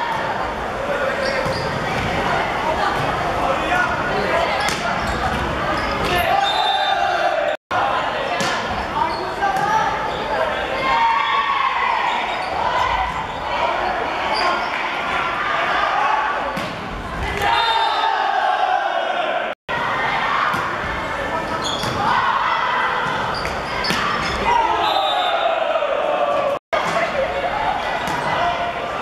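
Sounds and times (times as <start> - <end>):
players shouting: 6.0 - 29.0.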